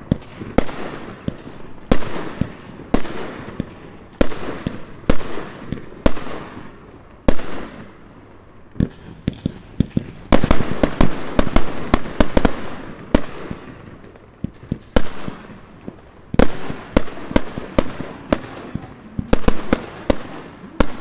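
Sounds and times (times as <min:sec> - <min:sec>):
fireworks bursting with echo: 0:00.0 - 0:21.0.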